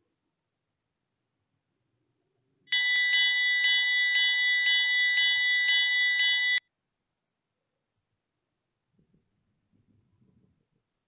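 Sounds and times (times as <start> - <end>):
electronic alarm ringing tone: 2.7 - 6.6.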